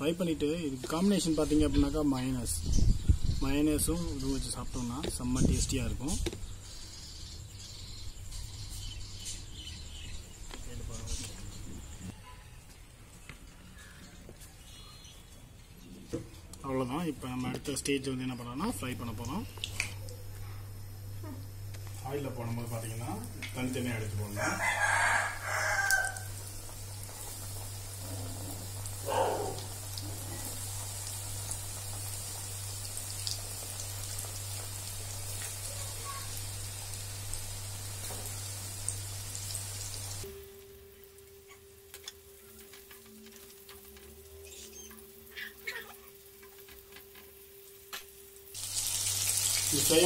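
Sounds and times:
chicken deep-frying in oil: 16.7s - 20.3s, 21.3s - 50.0s.

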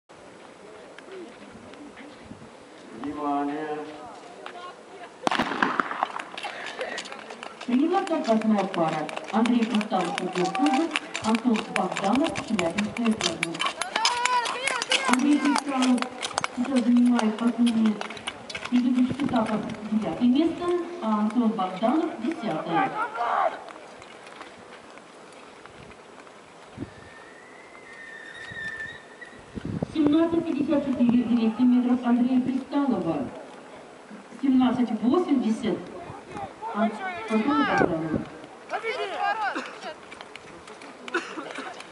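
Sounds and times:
starter's pistol shot: 5.2s - 6.2s
burst of sharp noise: 5.3s - 6.2s.

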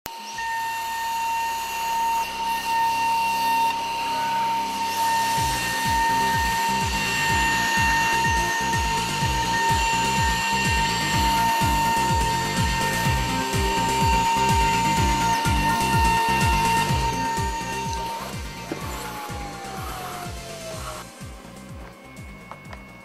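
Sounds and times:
milling spindle whining: 0.1s - 23.0s
background music with beat: 2.3s - 23.0s.

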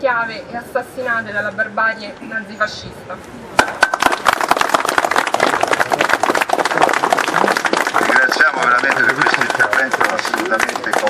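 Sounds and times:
small crowd applauding: 3.8s - 11.0s.

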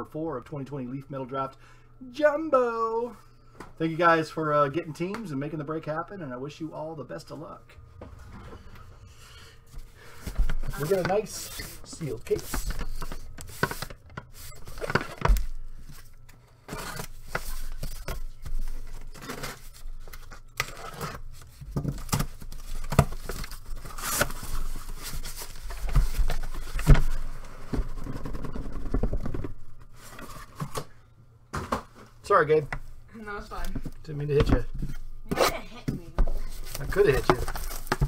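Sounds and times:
tape and cardboard tearing: 19.0s - 24.7s
cardboard flaps rustling: 36.3s - 38.0s.

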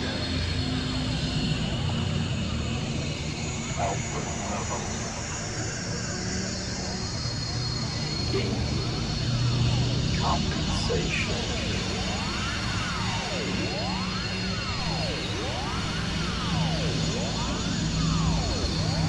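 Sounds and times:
steady low drone: 0.0s - 19.0s
thick wash of noise: 7.8s - 19.0s.

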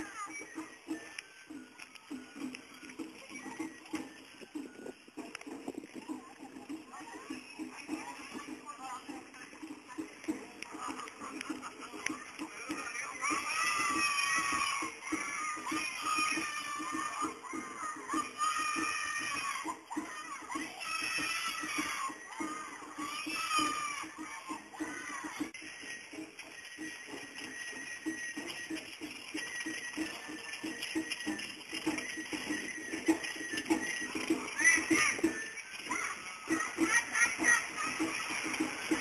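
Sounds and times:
high bamboo flute: 0.0s - 8.6s, 10.2s - 39.0s
quick steady drum beats: 0.0s - 39.0s.

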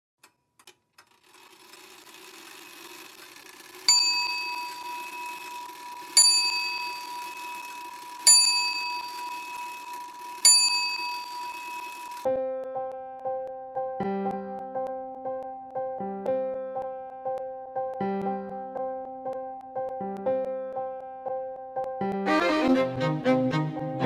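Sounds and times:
small metal bell ding: 3.9s - 5.2s, 6.2s - 7.0s, 10.5s - 11.9s.

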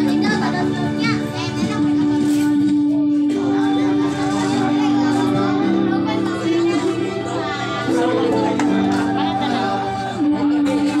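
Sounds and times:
background music with held notes: 0.0s - 11.0s
children chattering: 0.0s - 11.0s.

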